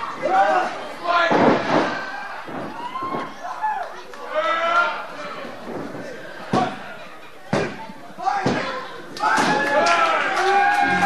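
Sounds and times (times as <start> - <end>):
people shouting: 0.0 - 5.1, 7.6 - 11.0.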